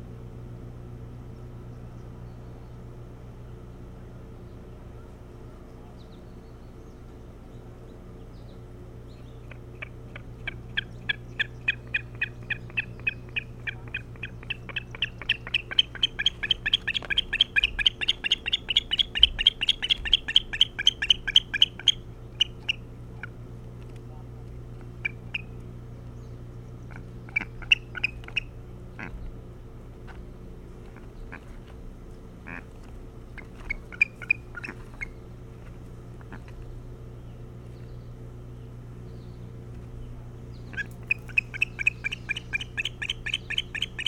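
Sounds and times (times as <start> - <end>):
osprey whistled chirps: 10.8 - 22.8, 41.1 - 44.0.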